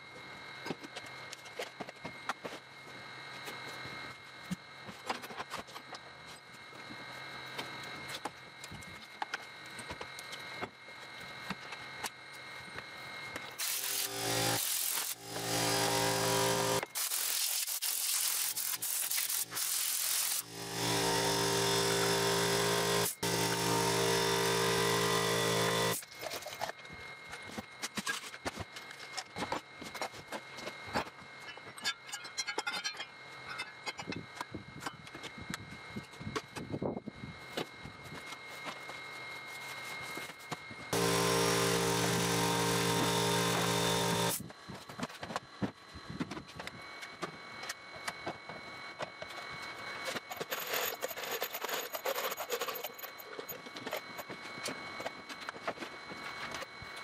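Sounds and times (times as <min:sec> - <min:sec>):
power tool motor humming: 0:13.6 - 0:26.0, 0:40.9 - 0:44.5.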